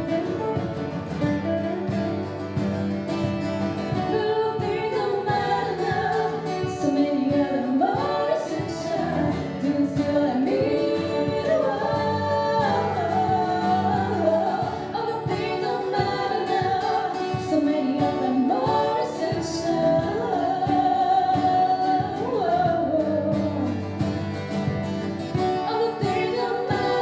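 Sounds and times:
strummed acoustic guitars: 0.0 - 27.0
women singing in harmony: 3.9 - 23.9, 25.3 - 27.0.

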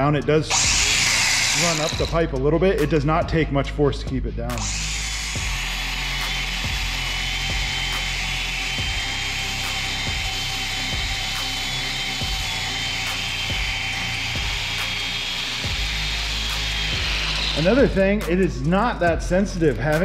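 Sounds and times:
belt sander grinding metal: 0.4 - 2.5, 4.6 - 18.7.

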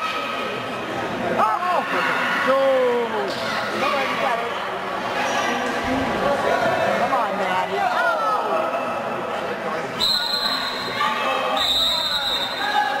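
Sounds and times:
voices in a gym: 0.0 - 13.0
referee's whistle blasts: 10.0 - 13.0.

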